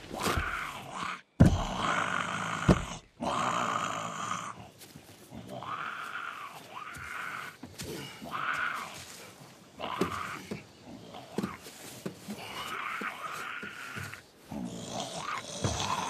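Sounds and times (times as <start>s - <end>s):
raspy growling and snarling: 0.0s - 9.0s, 12.4s - 16.0s.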